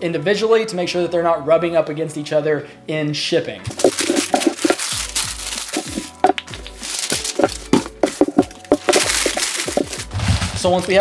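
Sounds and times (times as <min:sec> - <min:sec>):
background music: 0:00.0 - 0:11.0
packing paper crinkling: 0:03.7 - 0:11.0.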